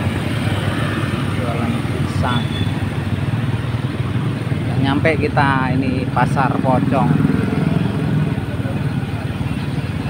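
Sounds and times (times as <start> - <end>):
motorcycle engine running: 0.0 - 10.0.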